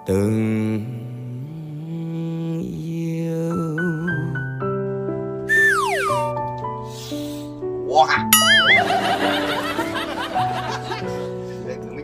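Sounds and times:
instrumental backing track: 4.4 - 12.0
men laughing: 8.4 - 12.0.

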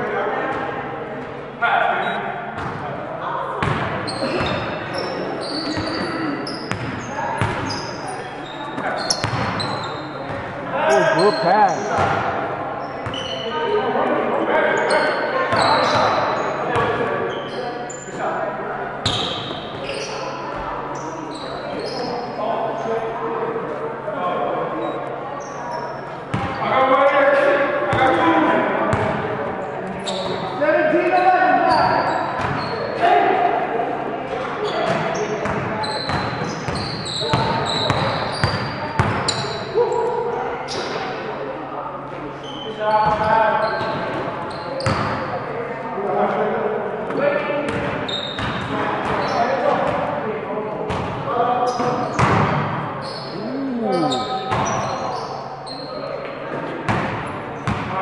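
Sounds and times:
players calling out: 10.9 - 11.9, 53.3 - 54.6.

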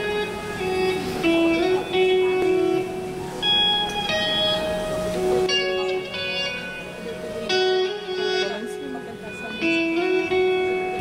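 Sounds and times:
guitar notes ringing: 0.0 - 11.0.

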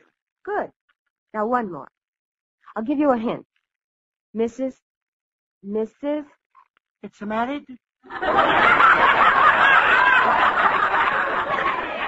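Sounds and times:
studio audience laughing: 8.1 - 12.0.

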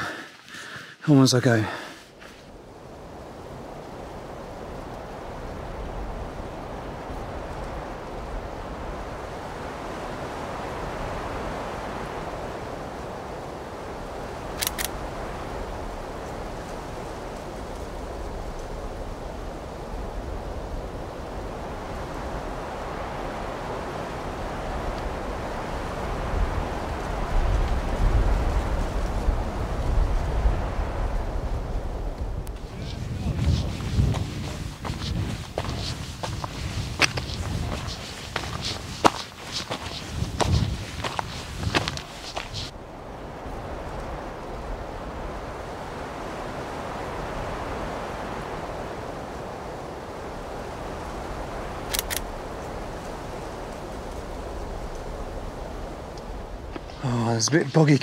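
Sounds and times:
wind gusts buffeting microphone: 0.0 - 58.0
wind rushing: 17.9 - 58.0.

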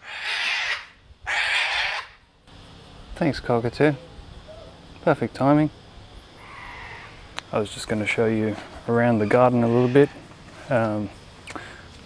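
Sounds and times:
cockatoo screeching: 0.0 - 2.2, 6.4 - 7.3, 8.5 - 10.3.

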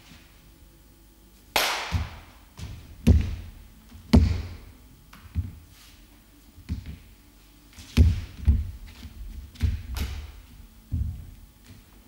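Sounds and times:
feet stamping on wooden floor: 1.9 - 4.7, 7.9 - 11.9.

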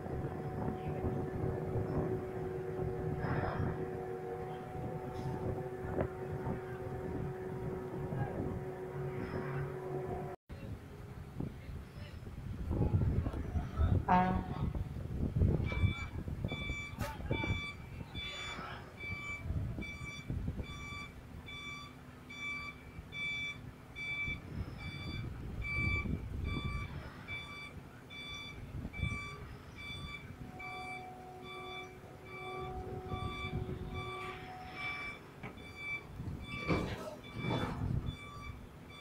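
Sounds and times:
steady whine: 0.0 - 10.4
low engine rumble: 0.0 - 39.0
warning beeper short beeps: 15.7 - 39.0.

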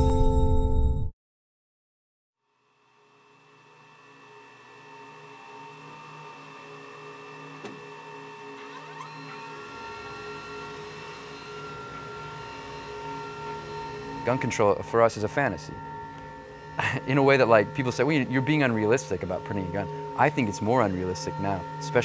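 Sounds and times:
stepper motors humming and whining: 3.0 - 22.0.

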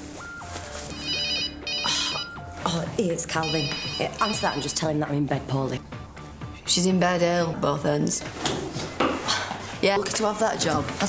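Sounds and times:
mobile phone ringtone melody: 0.3 - 2.5, 3.3 - 4.9.

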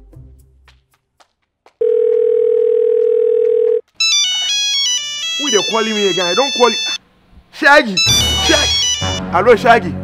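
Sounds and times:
telephone beep: 1.8 - 7.0, 8.0 - 9.2
electronic ringtone melody: 4.0 - 7.0, 8.0 - 9.2.

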